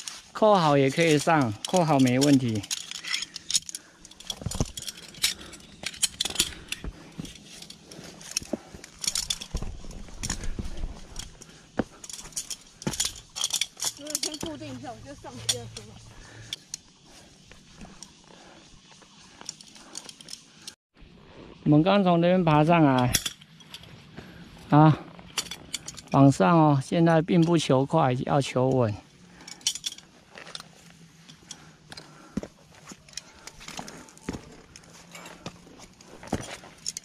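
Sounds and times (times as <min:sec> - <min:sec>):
metal climbing gear clinking: 0:00.0 - 0:20.8, 0:22.5 - 0:37.0
shoes scuffing rock: 0:34.2 - 0:34.6, 0:35.2 - 0:36.8.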